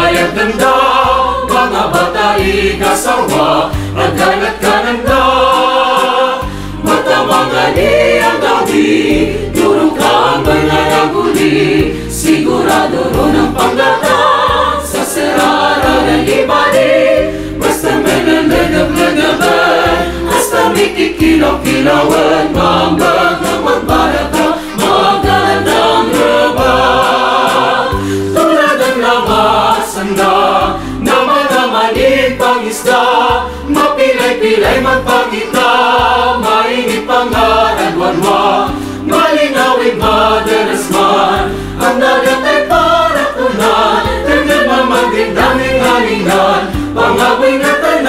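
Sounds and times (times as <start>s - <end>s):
mixed choir singing in harmony: 0.0s - 48.0s.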